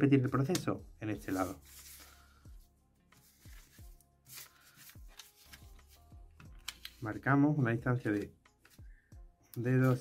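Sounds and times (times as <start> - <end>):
faint background music: 0.0 - 10.0
paper rustling: 1.2 - 2.4, 3.1 - 6.0.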